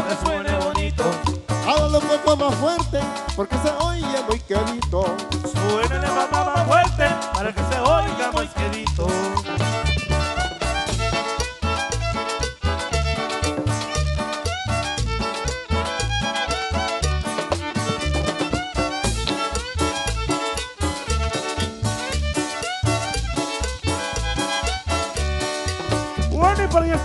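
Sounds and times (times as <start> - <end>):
drums: 0.0 - 27.0
guitar: 0.0 - 27.0
upright bass: 0.0 - 27.0
violin melody: 5.8 - 27.0.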